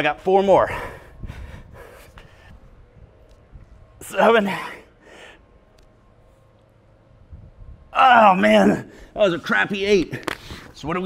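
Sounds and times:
low muffled rumbles: 0.0s - 9.4s
faint steady hum: 0.0s - 11.0s.

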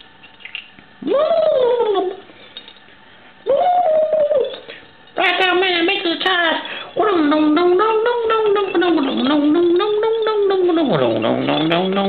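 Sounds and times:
man singing wordless tune: 7.0s - 12.0s.

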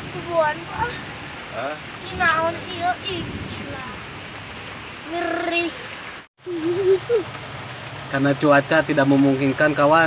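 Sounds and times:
heavy rain: 0.0s - 10.0s.

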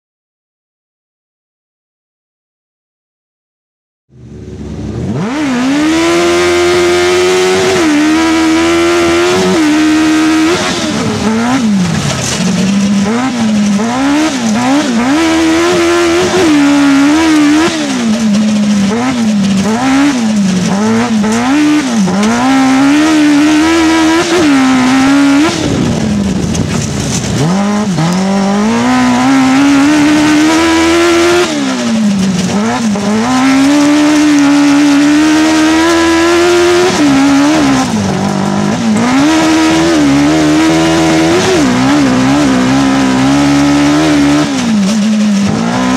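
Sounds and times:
racing car engine revving: 4.2s - 45.9s.

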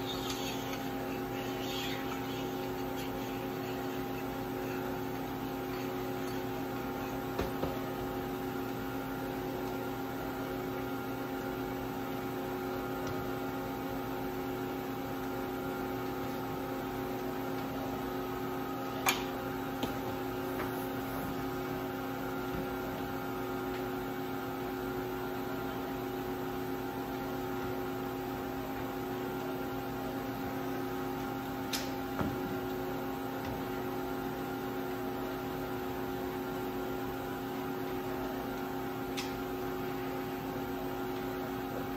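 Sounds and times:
machine electrical hum: 0.0s - 41.9s.

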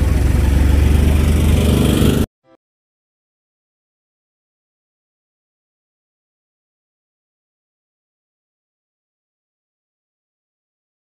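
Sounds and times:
small engine idling: 0.0s - 2.3s.

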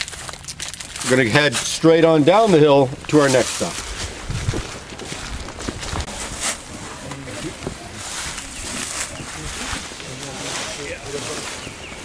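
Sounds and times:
footsteps of people walking: 0.6s - 12.0s
faint voices chatting: 6.4s - 12.0s.

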